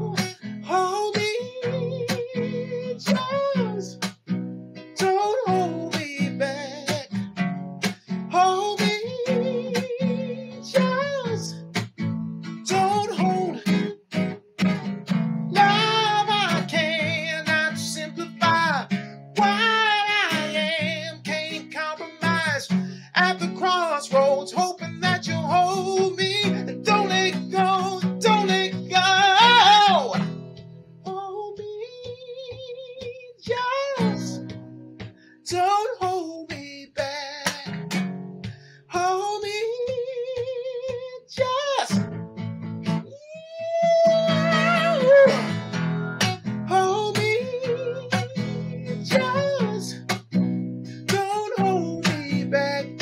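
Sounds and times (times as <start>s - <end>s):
man singing: 0.0s - 4.1s, 5.0s - 11.8s, 12.5s - 14.3s, 15.5s - 30.3s, 31.0s - 34.6s, 35.4s - 38.0s, 38.8s - 42.1s, 42.9s - 53.0s
strummed acoustic guitar: 0.0s - 53.0s.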